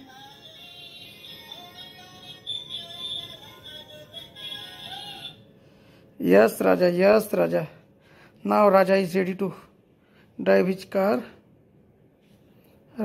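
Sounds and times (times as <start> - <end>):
toy car electronic melody: 0.0 - 5.4.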